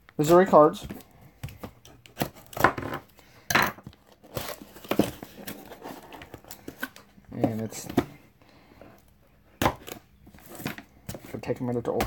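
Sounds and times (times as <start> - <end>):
package handling: 3.8 - 8.2.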